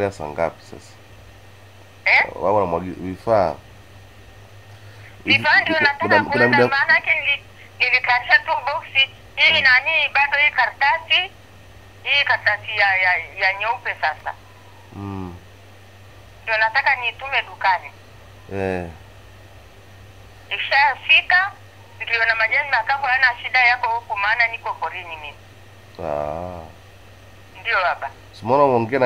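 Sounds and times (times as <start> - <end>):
steady low hum: 0.0 - 29.0
speech over phone line: 2.1 - 3.6, 5.1 - 11.3, 12.0 - 15.4, 16.4 - 19.0, 20.5 - 25.4, 27.6 - 29.0.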